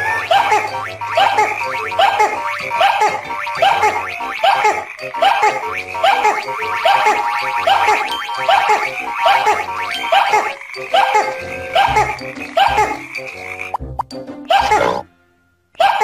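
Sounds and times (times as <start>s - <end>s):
cartoon frogs croaking: 0.0s - 15.1s
background music: 0.0s - 16.0s.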